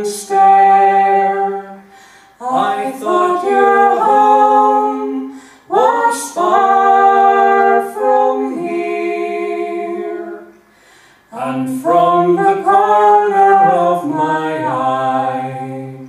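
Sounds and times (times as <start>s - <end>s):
man and woman singing in harmony: 0.0s - 16.0s.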